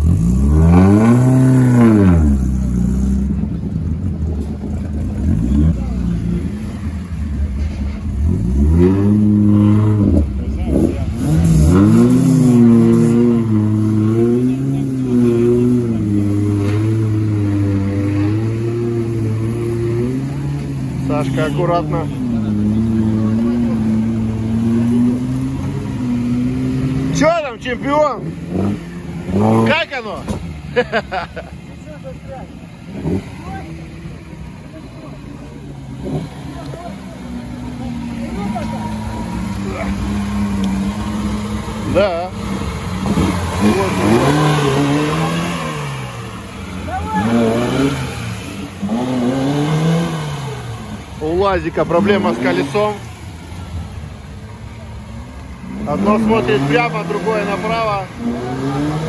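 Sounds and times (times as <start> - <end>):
car engine revving: 0.0 - 59.0
voices shouting: 30.8 - 45.8, 46.5 - 48.9.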